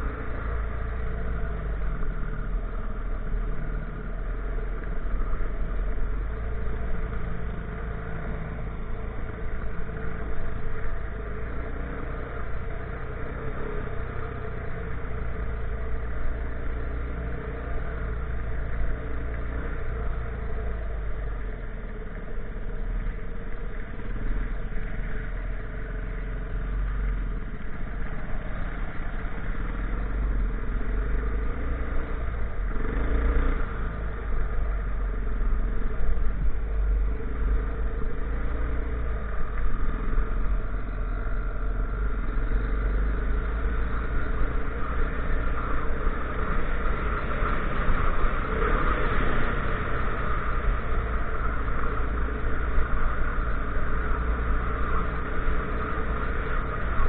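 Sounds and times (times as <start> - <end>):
motorcycle engines: 0.0 - 57.0.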